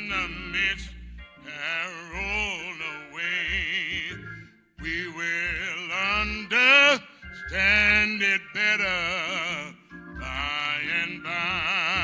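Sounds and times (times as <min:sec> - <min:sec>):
man singing a hymn: 0:00.0 - 0:12.0.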